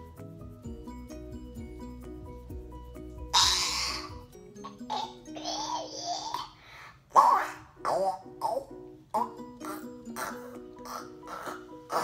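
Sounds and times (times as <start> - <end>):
background music with light notes: 0.0 - 12.0
boy making crunching mouth sounds: 7.1 - 12.0.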